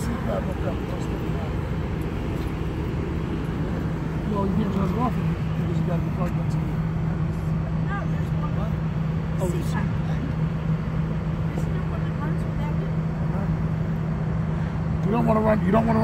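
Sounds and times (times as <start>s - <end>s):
idling vehicle engines: 0.0s - 16.0s
steady low hum: 0.0s - 16.0s.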